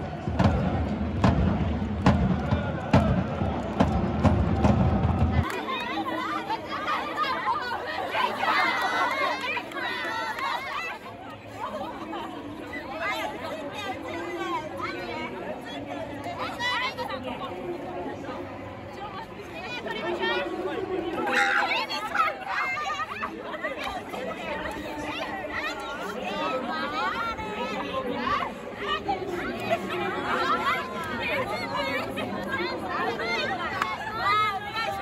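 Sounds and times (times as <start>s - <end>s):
drum beating: 0.0s - 5.5s
crowd noise: 0.0s - 35.0s
many voices chattering: 0.0s - 35.0s.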